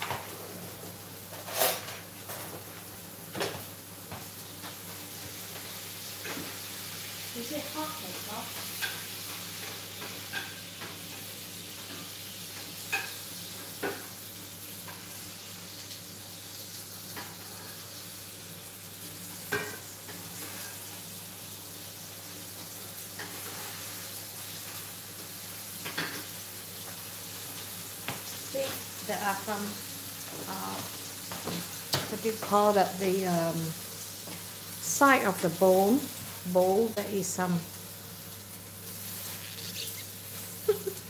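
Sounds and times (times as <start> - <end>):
meat frying in hot oil: 0.0 - 41.0.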